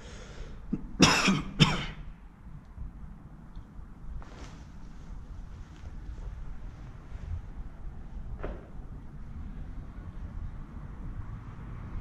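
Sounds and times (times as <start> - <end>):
person coughing: 0.7 - 2.0.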